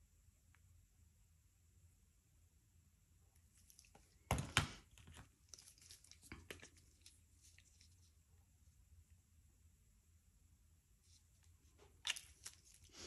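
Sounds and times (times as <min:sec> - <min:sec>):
crinkly plastic crackles: 0:04.9 - 0:08.1, 0:11.8 - 0:13.0.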